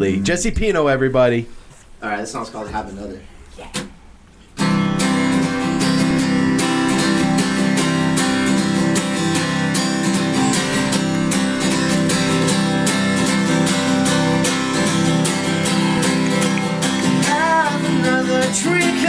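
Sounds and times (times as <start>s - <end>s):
acoustic guitar strumming: 4.6s - 19.0s.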